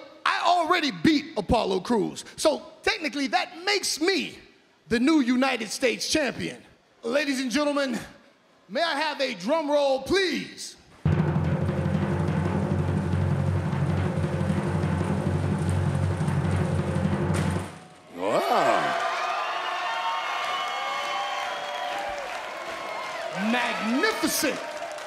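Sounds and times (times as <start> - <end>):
low drum roll: 11.0 - 18.0
musical fanfare: 11.1 - 18.0.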